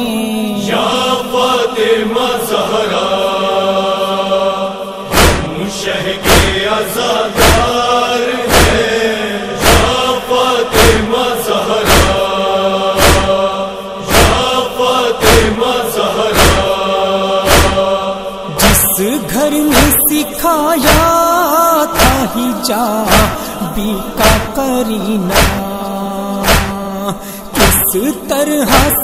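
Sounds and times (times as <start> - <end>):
voices chanting a drone: 0.0 - 29.0
chest-beating thumps: 5.1 - 5.6, 6.2 - 6.6, 7.4 - 7.7, 8.5 - 8.8, 9.6 - 10.0, 11.8 - 12.2, 13.0 - 13.4, 14.1 - 14.4, 16.3 - 16.7, 17.4 - 17.8, 19.8 - 20.0, 20.8 - 21.2, 22.0 - 22.3, 23.1 - 23.4, 24.2 - 24.6, 25.3 - 25.7, 26.4 - 26.8.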